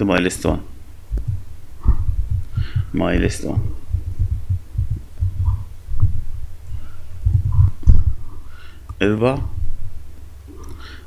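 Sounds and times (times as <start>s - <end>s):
low uneven rumbling: 0.0s - 10.8s
dull thumps: 1.1s - 9.9s.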